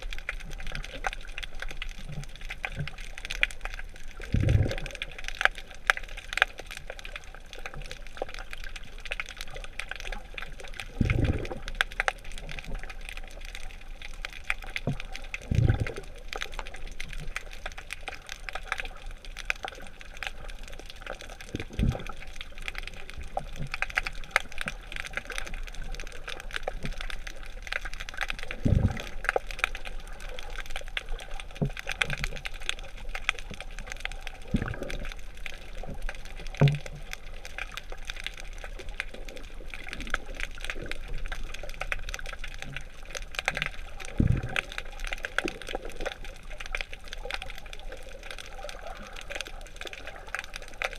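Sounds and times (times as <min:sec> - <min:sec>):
underwater fine crackling: 0:00.0 - 0:50.9
exhaled bubbles rushing: 0:04.0 - 0:05.2, 0:10.3 - 0:14.0, 0:15.1 - 0:17.4, 0:21.3 - 0:27.5, 0:28.3 - 0:31.6, 0:33.6 - 0:37.6, 0:42.9 - 0:47.1.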